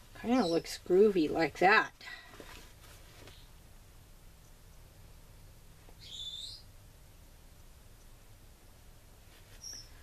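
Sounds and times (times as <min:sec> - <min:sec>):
faint low room hum: 0:00.0 - 0:10.0
bird chirping: 0:00.2 - 0:00.8, 0:05.9 - 0:06.8, 0:09.5 - 0:10.0.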